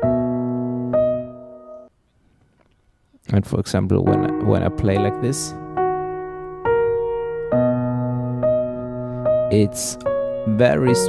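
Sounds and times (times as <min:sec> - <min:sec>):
piano chord ringing: 0:00.0 - 0:01.9, 0:04.0 - 0:11.0.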